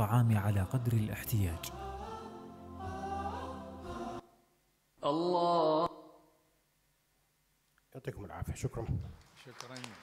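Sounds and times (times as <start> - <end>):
chanted vocal note: 0.0 - 6.3.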